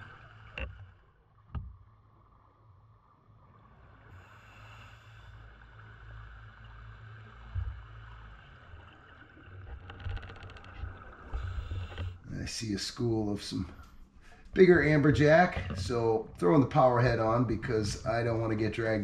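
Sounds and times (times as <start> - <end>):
underwater rumble of moving water: 0.0 - 19.0
underwater thump: 14.6 - 17.1.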